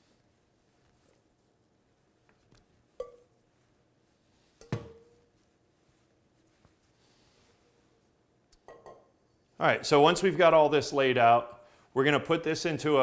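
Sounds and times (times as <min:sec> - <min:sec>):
metal bowl and pan clinking: 0:08.6 - 0:09.1.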